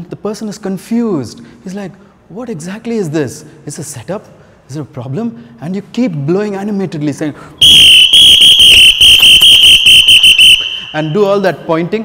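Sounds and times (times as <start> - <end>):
shrill sports whistle blasts: 7.6 - 11.2.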